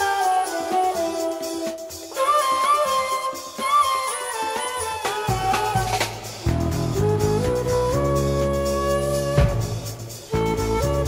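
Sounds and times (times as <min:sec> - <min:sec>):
shakuhachi playing jazz-funk melody: 0:00.0 - 0:11.0.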